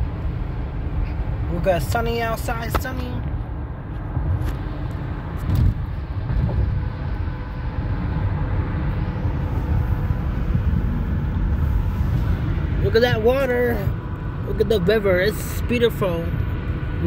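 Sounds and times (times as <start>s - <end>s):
tyres and engine rumble in car: 0.0s - 17.0s.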